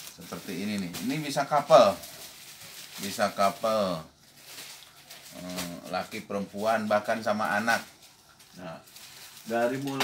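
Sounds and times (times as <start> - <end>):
man speaking: 5.4 - 7.9, 8.6 - 10.0.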